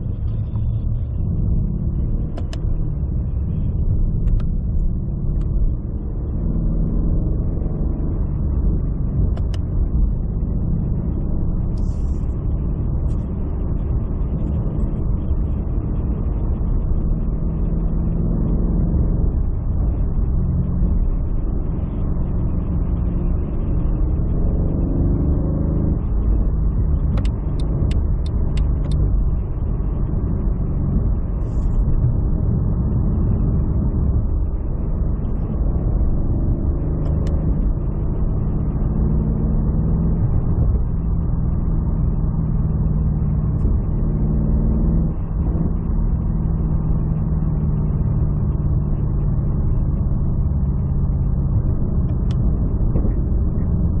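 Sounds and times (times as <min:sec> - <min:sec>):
low engine drone: 0:00.0 - 0:54.0
road noise: 0:00.0 - 0:54.0.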